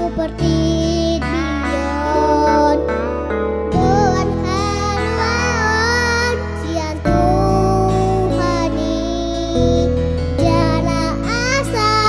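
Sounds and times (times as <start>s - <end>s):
boy singing into microphone: 0.0s - 12.0s
instrumental backing music: 0.0s - 12.0s.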